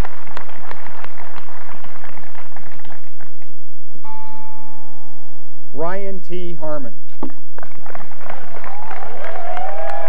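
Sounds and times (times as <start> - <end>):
people clapping: 0.0 - 3.6, 7.2 - 10.0
crowd noise: 7.4 - 10.0.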